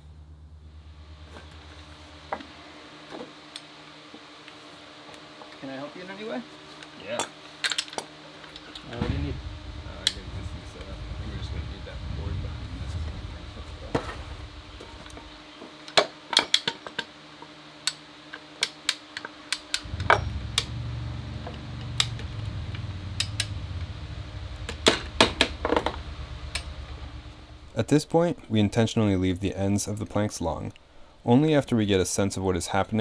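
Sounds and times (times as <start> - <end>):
low steady hum: 0.0 - 4.8, 8.4 - 15.7, 19.8 - 31.2.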